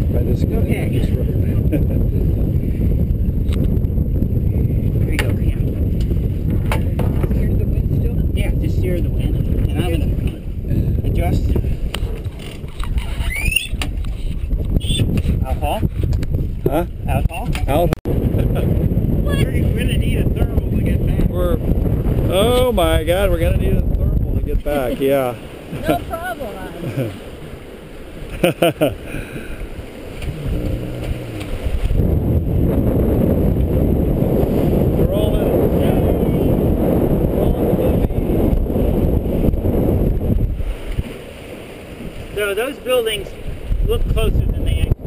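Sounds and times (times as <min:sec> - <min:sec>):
water noise: 0:00.0 - 0:45.0
wind rushing over microphone: 0:00.0 - 0:45.0
rising squeak: 0:12.8 - 0:13.8.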